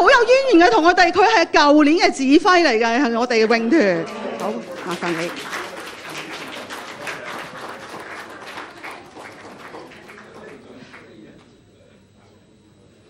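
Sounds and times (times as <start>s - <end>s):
audience applauding: 3.4s - 11.3s.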